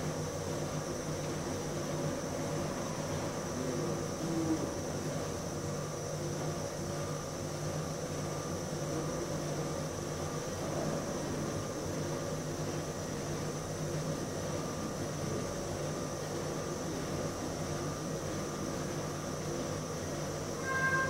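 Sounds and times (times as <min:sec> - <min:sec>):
ventilation fan humming: 0:00.0 - 0:21.0
brief higher note: 0:20.6 - 0:21.0.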